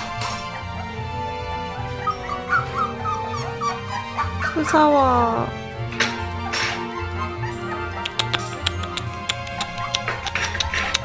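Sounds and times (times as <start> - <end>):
background music: 0.0 - 11.0
puppy whimpering: 1.9 - 4.8, 6.3 - 11.0.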